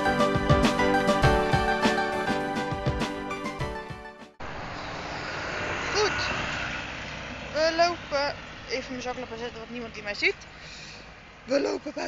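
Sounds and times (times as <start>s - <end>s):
background music: 0.0s - 4.4s
outdoor rushing background: 0.0s - 11.5s
people talking: 5.9s - 6.4s, 7.5s - 10.9s, 11.5s - 12.0s.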